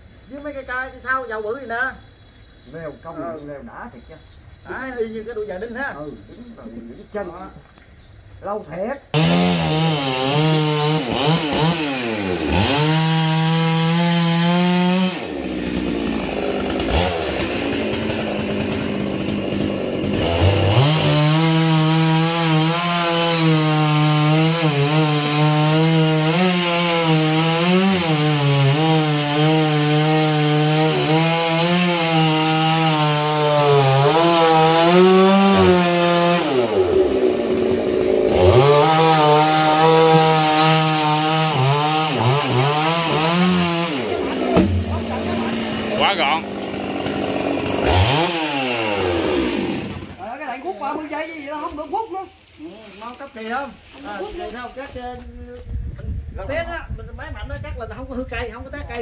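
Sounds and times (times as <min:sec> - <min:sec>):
chainsaw cutting wood: 0:09.1 - 0:50.2.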